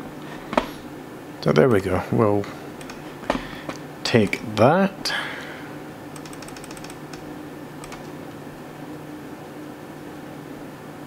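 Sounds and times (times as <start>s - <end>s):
low room hum: 0.0s - 11.0s
light clicks: 2.8s - 3.0s.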